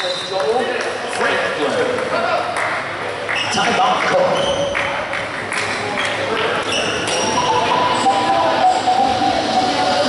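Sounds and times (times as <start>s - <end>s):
indistinct shouting and chatter: 2.1s - 10.0s
sneaker squeaks on hardwood: 6.0s - 7.5s.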